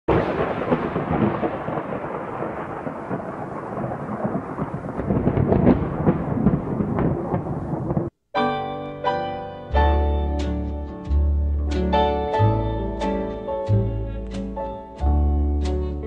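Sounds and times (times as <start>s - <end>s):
sharp crackles: 0.1s - 8.2s.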